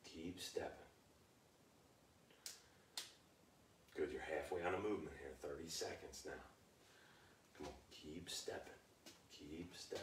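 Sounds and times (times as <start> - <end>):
faint clicks: 2.3 - 3.2.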